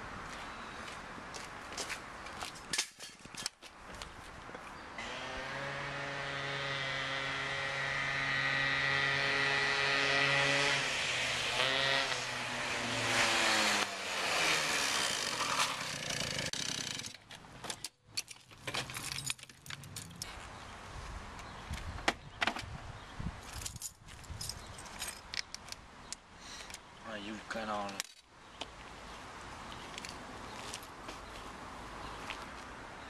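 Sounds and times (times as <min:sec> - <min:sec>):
car and scooter passing: 0:05.0 - 0:16.4.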